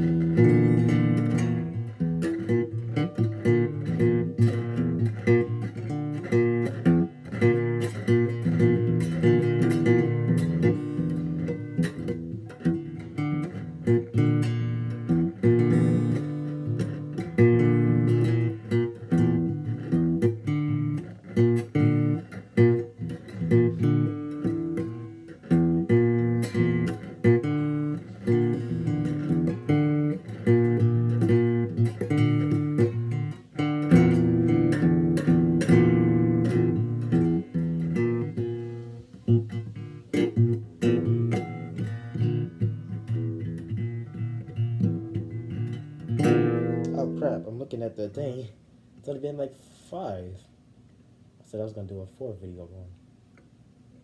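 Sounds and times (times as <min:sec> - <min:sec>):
guitar playing: 0:00.0 - 0:49.5.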